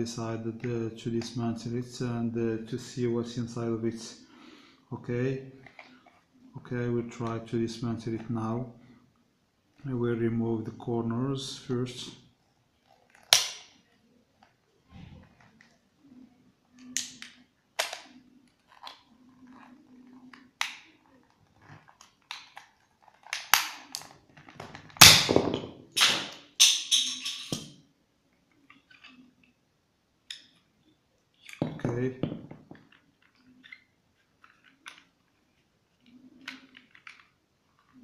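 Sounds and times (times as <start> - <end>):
plastic cube clicking and snapping: 16.8 - 19.0, 21.8 - 25.0.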